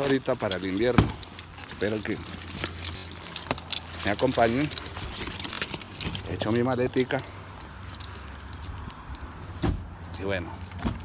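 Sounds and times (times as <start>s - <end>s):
bag handling noise: 0.0s - 11.0s
car door thud: 9.6s - 9.9s.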